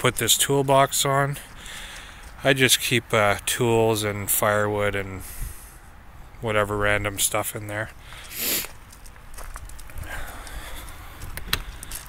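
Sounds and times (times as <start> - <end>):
rustle: 7.6 - 12.0
footsteps on gravel: 7.7 - 12.0.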